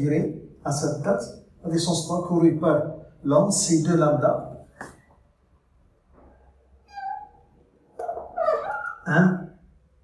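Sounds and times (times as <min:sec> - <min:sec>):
whiteboard marker squeaking: 0:06.9 - 0:07.4, 0:08.0 - 0:09.1.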